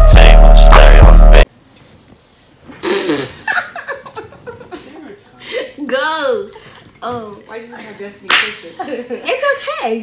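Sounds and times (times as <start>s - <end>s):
girl laughing: 2.9s - 5.7s.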